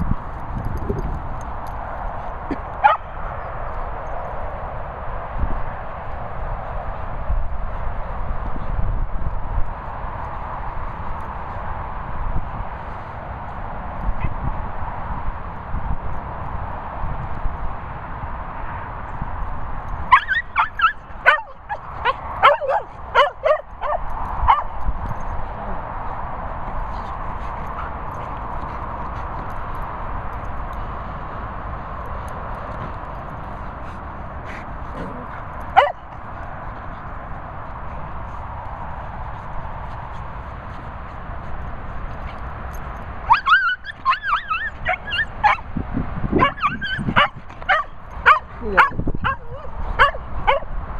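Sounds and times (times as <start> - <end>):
dog barking and yipping: 2.5 - 3.5, 20.1 - 24.8, 35.0 - 36.2, 43.2 - 45.7, 46.4 - 50.7.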